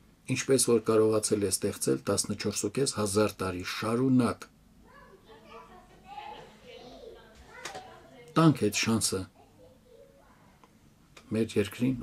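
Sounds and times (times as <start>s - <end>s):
faint room sound: 0.0s - 12.0s
man speaking: 0.3s - 4.5s, 8.4s - 9.4s, 11.3s - 12.0s.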